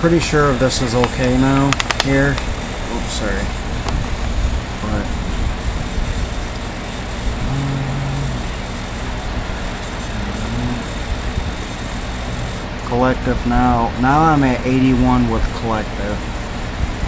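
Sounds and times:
low rumble and hiss: 0:00.0 - 0:17.0
faint low voice: 0:07.4 - 0:08.4, 0:10.1 - 0:11.0.

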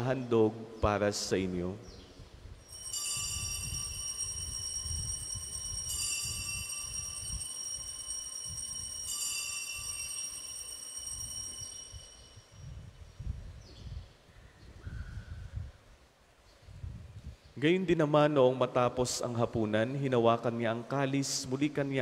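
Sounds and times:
altar bells ringing: 0:02.6 - 0:13.0.

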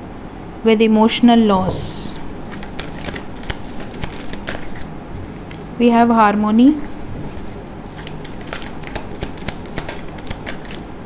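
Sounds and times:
cards being shuffled: 0:01.7 - 0:04.9, 0:06.8 - 0:10.8.

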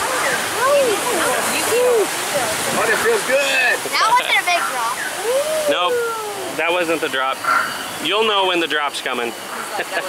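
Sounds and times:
people calling and chattering: 0:00.0 - 0:10.0
rushing churning water: 0:00.0 - 0:10.0.

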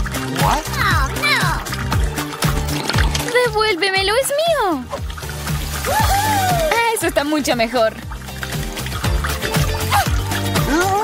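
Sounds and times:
background music: 0:00.0 - 0:11.0
liquid trickling into glass: 0:00.0 - 0:11.0.

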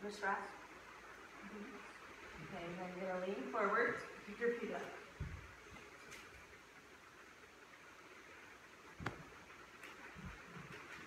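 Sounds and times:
soft low thuds of bodies: 0:05.1 - 0:06.0, 0:09.0 - 0:11.0.

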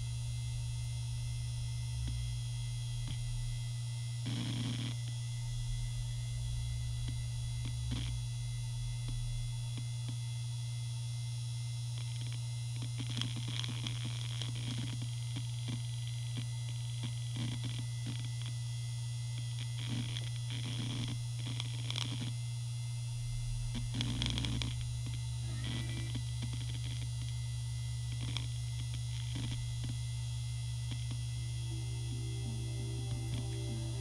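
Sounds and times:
hard drive spinning hum: 0:00.0 - 0:34.0
hard drive seek chatter: 0:23.4 - 0:31.2.

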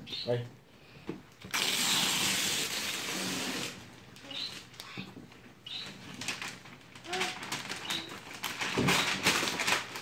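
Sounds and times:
wrapping paper tearing and rustling: 0:01.5 - 0:04.8, 0:05.8 - 0:10.0.

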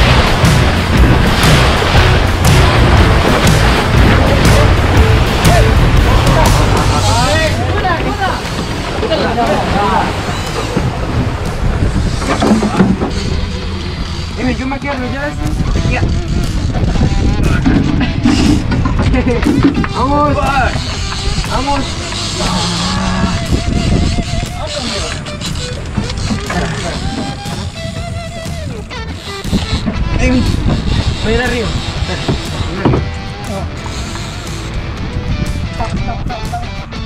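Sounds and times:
water washing: 0:00.0 - 0:35.0
boat engine rumbling: 0:00.0 - 0:37.0
music: 0:00.0 - 0:37.0
voices: 0:03.9 - 0:11.0, 0:19.1 - 0:27.8.

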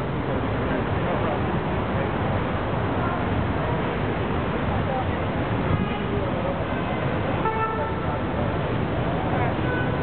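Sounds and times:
road traffic rumble: 0:00.0 - 0:10.0
car horn toot: 0:07.4 - 0:08.0.

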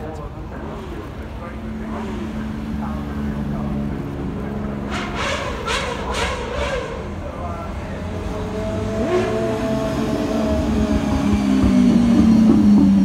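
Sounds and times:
people talking: 0:00.0 - 0:12.6
car engines driving past slowly: 0:00.0 - 0:13.0.

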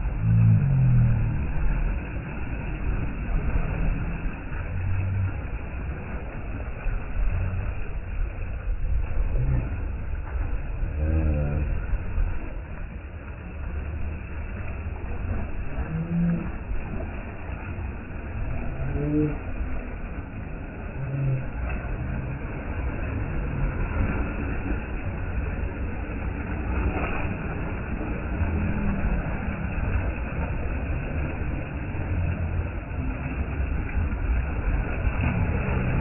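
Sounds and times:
heavy low rumble: 0:00.0 - 0:36.0
small waves splashing on concrete: 0:00.0 - 0:36.0.

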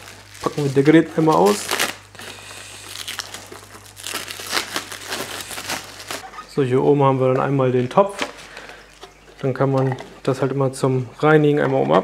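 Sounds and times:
plastic wrap crinkling: 0:00.0 - 0:06.3.

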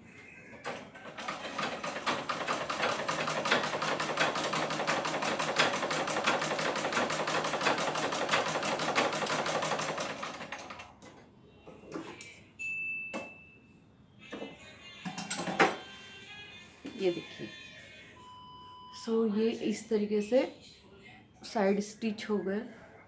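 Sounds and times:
sewing machine running: 0:00.6 - 0:10.9.

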